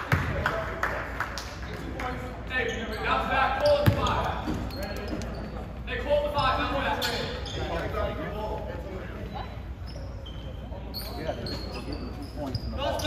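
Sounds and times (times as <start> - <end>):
basketball bounce on wooden floor: 3.8 - 4.6.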